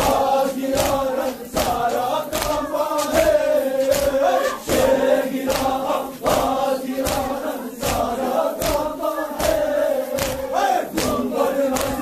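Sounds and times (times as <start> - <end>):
crowd chanting a lament: 0.0 - 12.0
unison chest-beats: 0.0 - 12.0.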